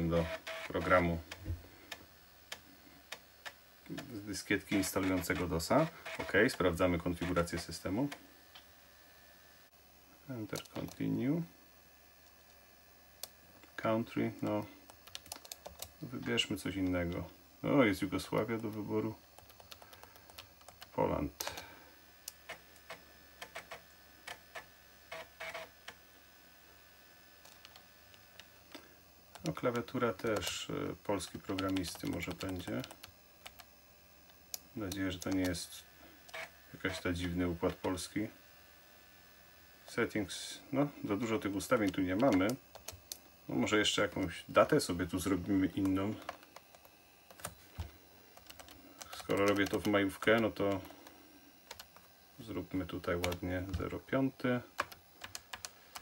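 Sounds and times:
floppy drive clicks: 0.0 - 8.7, 18.0 - 26.0, 27.4 - 35.6, 36.2 - 38.0, 41.4 - 52.1
short buzzes: 0.0 - 10.4, 35.6 - 37.3.

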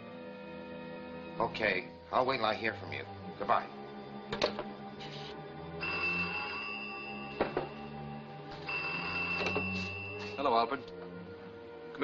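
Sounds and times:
background music: 0.0 - 12.0
telephone ringing with buzzing bell: 5.8 - 10.5.

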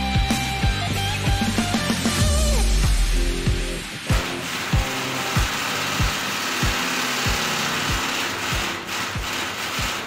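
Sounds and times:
background music with drum beat: 0.0 - 10.0.

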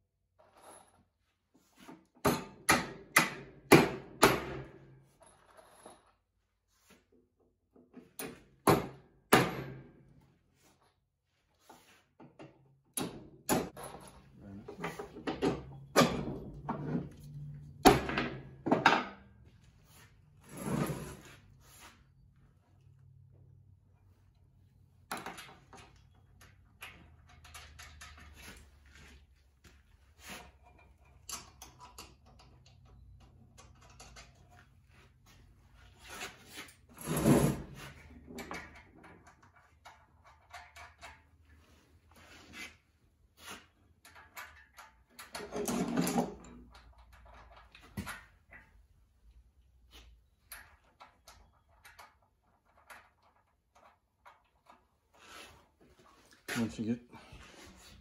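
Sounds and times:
tools clattering: 13.0 - 19.4, 25.1 - 29.2
tools clicking and rattling: 25.1 - 28.7, 30.6 - 34.7, 37.9 - 41.5, 44.0 - 48.7.

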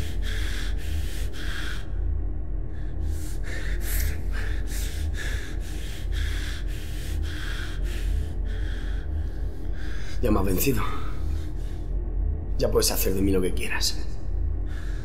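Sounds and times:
man panting: 0.0 - 2.0, 2.7 - 10.2
low music drone: 0.0 - 15.0.

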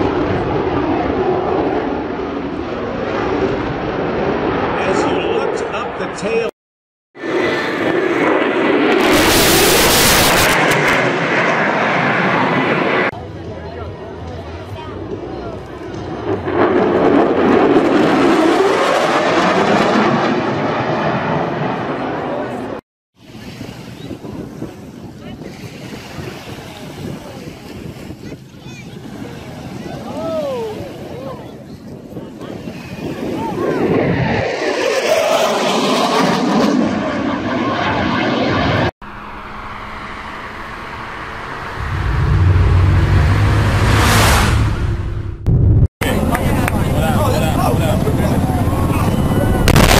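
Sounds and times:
jet passing low and fast: 0.0 - 6.5, 7.2 - 13.2, 15.0 - 28.3, 31.8 - 49.9.

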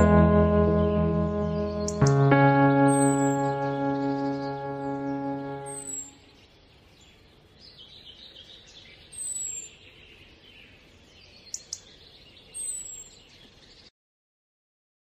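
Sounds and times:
birds chirping: 0.0 - 13.9.

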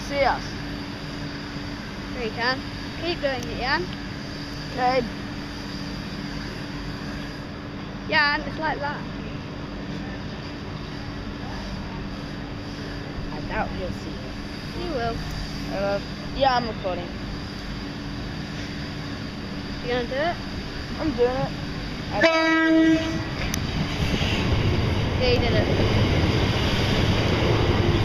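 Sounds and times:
electric train hum: 0.0 - 28.0.

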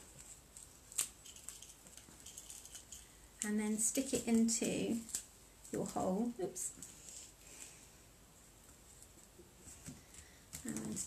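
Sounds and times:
handling craft materials: 0.0 - 7.8, 8.9 - 11.0.

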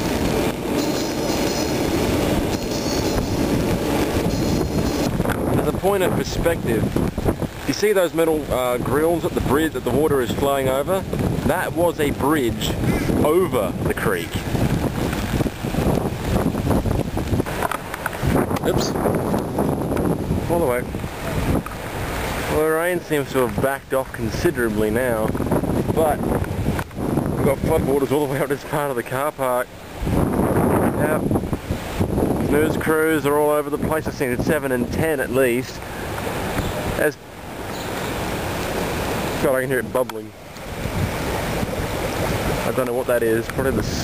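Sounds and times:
wind buffeting microphone: 0.0 - 28.6, 29.8 - 44.0
floodwater bubbling and rushing: 0.0 - 44.0.

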